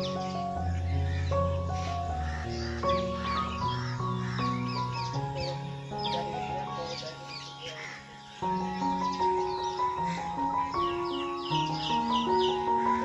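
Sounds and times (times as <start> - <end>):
background music of held chords: 0.0 - 13.0.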